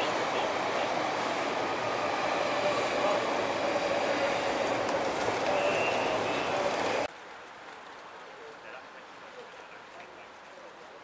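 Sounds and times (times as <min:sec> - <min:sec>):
train rumbling over bridge: 0:00.0 - 0:07.1
wheels squealing: 0:01.4 - 0:07.1.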